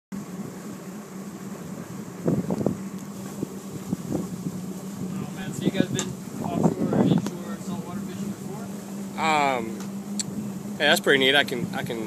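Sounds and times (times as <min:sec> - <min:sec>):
boat engine idling: 0:00.2 - 0:12.0
wind buffeting microphone: 0:01.8 - 0:09.2.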